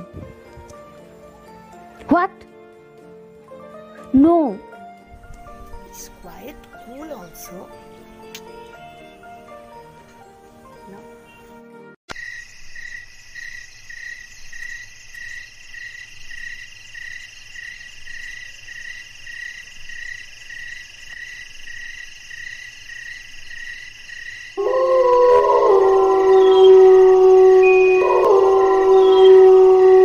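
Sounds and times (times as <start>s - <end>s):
insects chirping: 10.5s - 29.9s
wavering musical tone: 26.4s - 29.5s.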